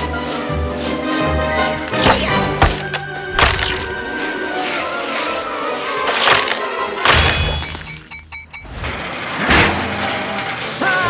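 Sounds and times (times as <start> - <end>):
background music: 0.0 - 8.3
glass shards shattering: 6.0 - 8.6.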